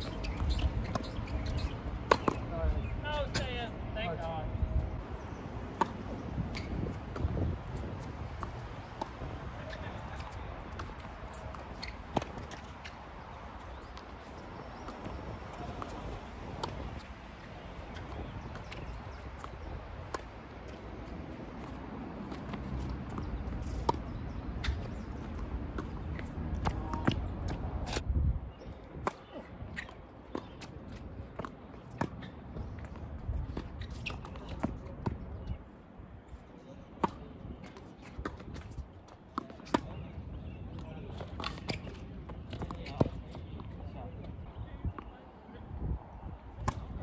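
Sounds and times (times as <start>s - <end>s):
tennis ball bouncing: 0.0s - 2.5s, 5.7s - 13.0s, 13.6s - 28.0s, 29.0s - 35.2s, 37.0s - 40.0s, 46.6s - 46.8s.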